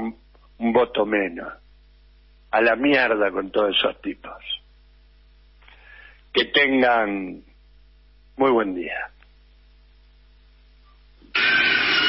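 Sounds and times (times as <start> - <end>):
faint electrical hum: 0.0 - 12.0
loud dense sound: 11.3 - 12.0.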